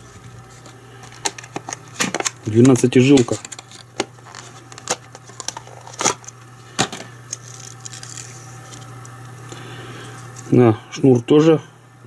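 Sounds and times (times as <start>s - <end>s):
packaging rustling: 0.0s - 9.1s
steady low hum: 0.0s - 12.0s
plastic cases clicking: 1.0s - 6.2s.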